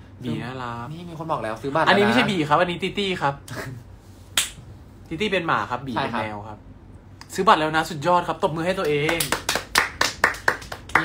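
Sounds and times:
people clapping quickly: 0:08.8 - 0:11.0.

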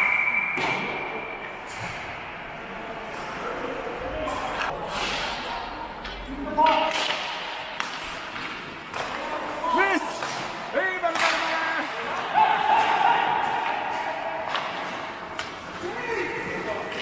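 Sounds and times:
sticks and puck clacking: 0:04.3 - 0:17.0
players shouting: 0:08.9 - 0:15.0.

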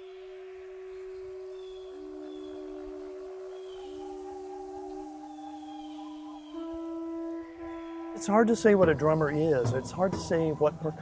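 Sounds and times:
long steady percussion tones: 0:00.0 - 0:11.0.

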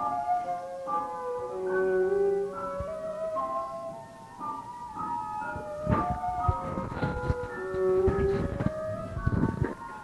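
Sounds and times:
piano: 0:00.0 - 0:10.0.

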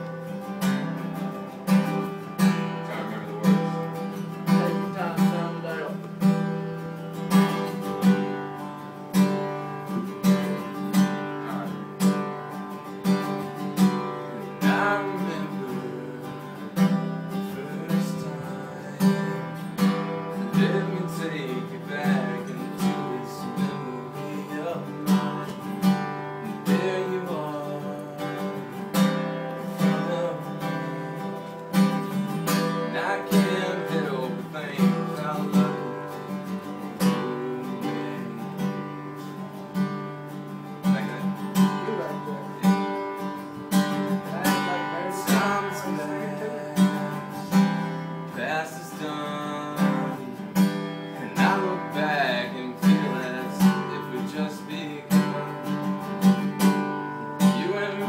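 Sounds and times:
man singing: 0:00.0 - 0:39.8, 0:40.6 - 0:58.0
acoustic guitar strummed: 0:00.0 - 0:58.0.

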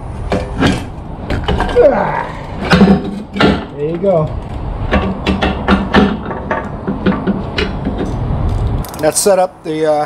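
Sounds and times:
person muttering: 0:01.7 - 0:02.6.

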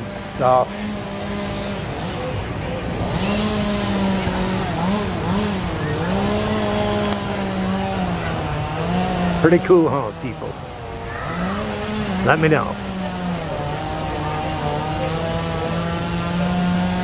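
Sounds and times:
engine humming: 0:00.0 - 0:17.0.

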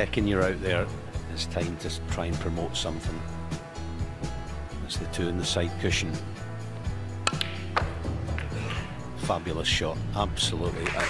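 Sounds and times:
background music: 0:00.0 - 0:11.0
snooker balls clicking: 0:07.3 - 0:08.6.

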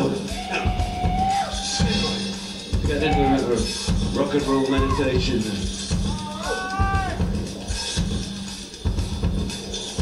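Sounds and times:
drum kit with heavy bass drum: 0:00.0 - 0:10.0.

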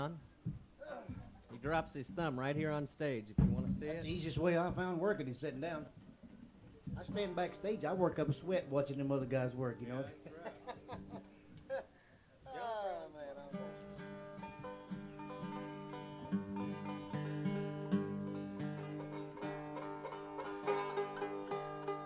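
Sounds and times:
guitar: 0:03.4 - 0:11.7, 0:12.6 - 0:22.0
banjo strings plucked and tuned: 0:06.8 - 0:11.3, 0:13.5 - 0:22.0.

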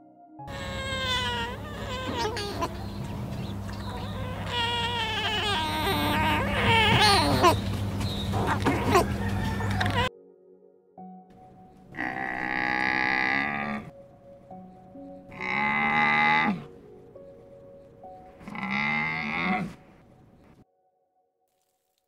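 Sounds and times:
soft background music: 0:00.0 - 0:21.9
camel moaning calls: 0:00.5 - 0:10.1, 0:11.9 - 0:13.9, 0:15.1 - 0:20.6.

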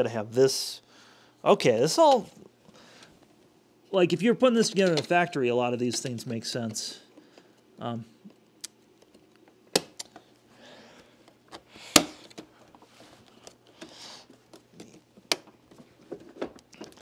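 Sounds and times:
plastic parts clicking together: 0:08.6 - 0:10.3.

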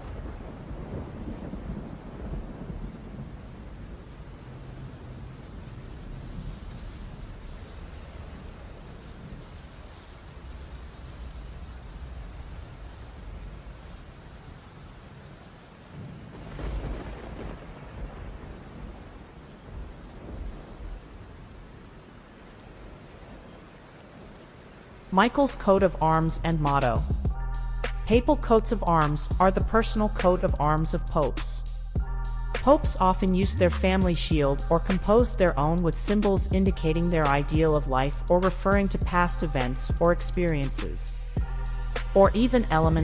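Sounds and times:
thunder rumbles: 0:00.0 - 0:24.4
steady rain hiss: 0:00.0 - 0:43.0.

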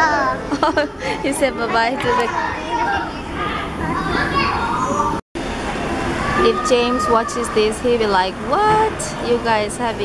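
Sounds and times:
young children playing and talking: 0:00.0 - 0:05.2, 0:05.9 - 0:08.2.

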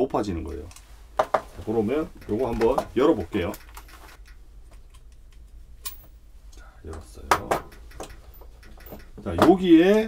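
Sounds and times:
metallic clicks of torch parts: 0:02.1 - 0:10.0.

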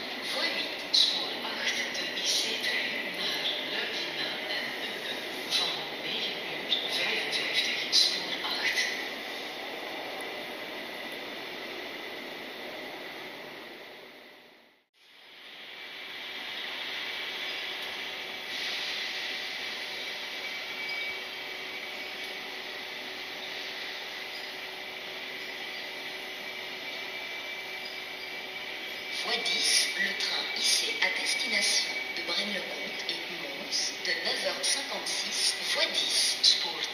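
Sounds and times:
train rolling past: 0:00.0 - 0:36.9
thin high whine: 0:12.1 - 0:36.9.

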